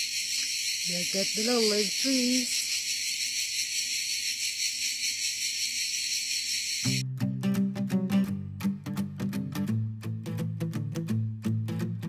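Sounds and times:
crickets chirping: 0.0s - 7.0s
plucked acoustic guitar music: 7.0s - 12.0s.

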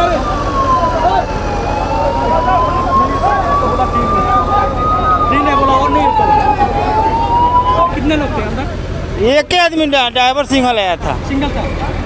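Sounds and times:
emergency siren wailing: 0.0s - 8.4s
crowd talking: 0.0s - 12.0s.

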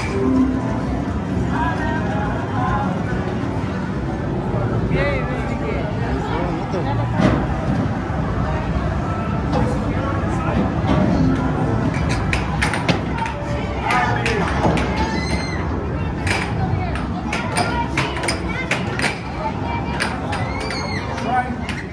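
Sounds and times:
background chatter: 0.0s - 21.9s.

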